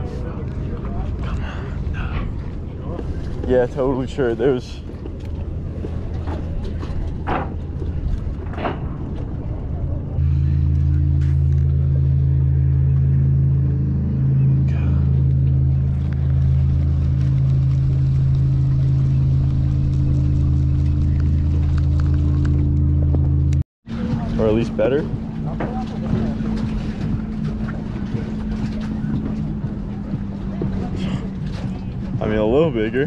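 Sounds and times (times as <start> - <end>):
low rumbling: 0.0 - 33.0
motor humming: 5.0 - 32.8.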